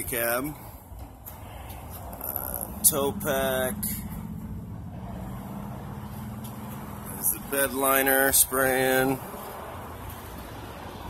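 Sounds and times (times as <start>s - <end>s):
low mechanical hum: 0.7s - 7.8s.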